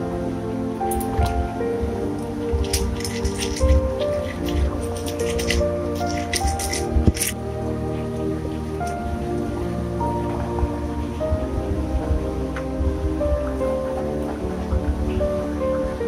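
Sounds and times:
instrumental background music: 0.0 - 16.0
pestle grinding in stone mortar: 2.6 - 7.4.

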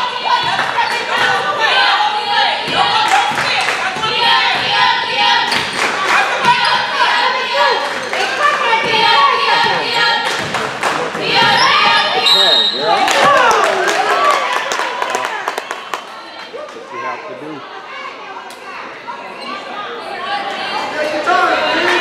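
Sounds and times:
voices calling out in a gym: 0.0 - 22.0.

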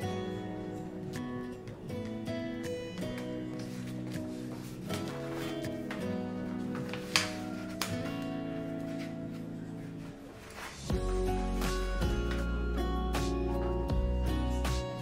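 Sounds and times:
music of held layered notes: 0.0 - 15.0.

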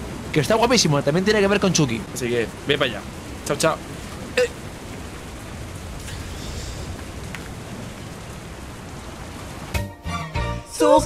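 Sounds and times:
steady hiss of falling rain: 0.0 - 11.0.

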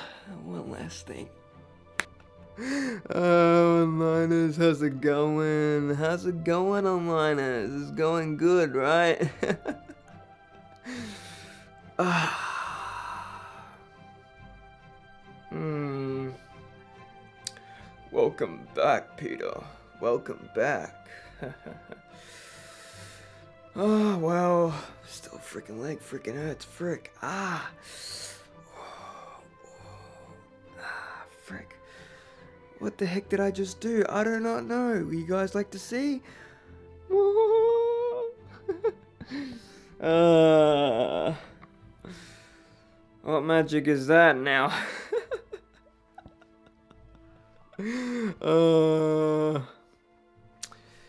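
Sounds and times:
soft background music: 0.0 - 51.0
man sighing: 2.6 - 3.8, 10.8 - 14.0, 15.5 - 16.6, 37.1 - 42.7, 45.0 - 49.9
man exhaling breathily: 10.8 - 14.0
person humming: 37.1 - 38.3, 40.0 - 41.5, 48.4 - 49.8.

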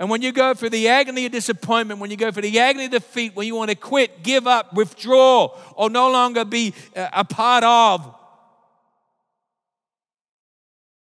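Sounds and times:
man's voice reverberating: 0.0 - 8.7.

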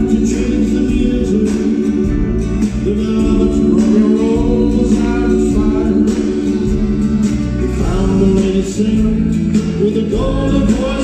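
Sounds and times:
live pop band music: 0.0 - 11.0
voices singing together: 0.0 - 11.0.

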